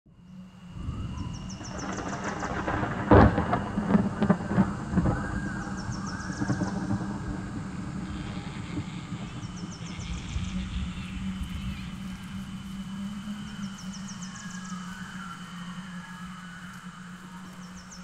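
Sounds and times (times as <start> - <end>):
steady low hum: 0.1 - 18.0
thunder rumble and crack: 0.8 - 12.1.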